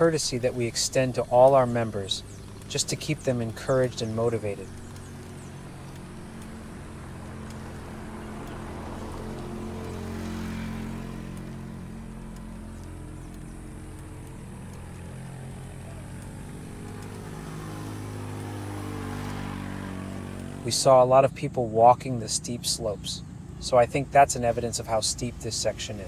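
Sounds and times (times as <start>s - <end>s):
vehicle engine running at low revs: 0.0s - 26.0s.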